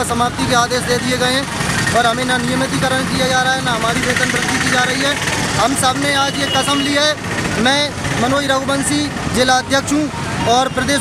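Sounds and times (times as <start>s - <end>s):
man talking into a microphone: 0.0s - 11.0s
outdoor background noise: 0.0s - 11.0s.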